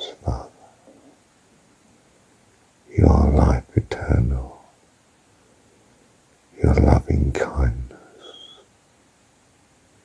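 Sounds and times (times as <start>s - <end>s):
man whispering: 0.0s - 0.9s, 2.8s - 4.8s, 6.5s - 8.6s
high whistle-like tone: 8.2s - 8.7s.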